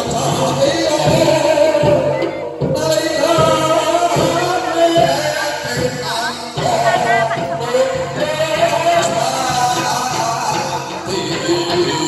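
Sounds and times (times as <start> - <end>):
drums beating a rhythm: 0.0 - 12.0
person singing: 0.0 - 12.0.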